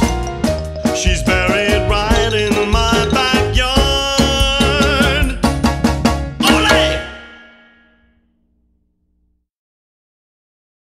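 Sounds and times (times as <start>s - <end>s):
band final chord ringing: 6.4s - 8.1s.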